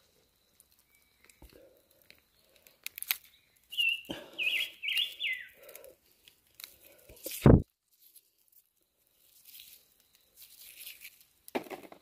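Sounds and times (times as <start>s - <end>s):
bird chirping: 0.5s - 5.8s
soft rustling: 6.0s - 11.4s.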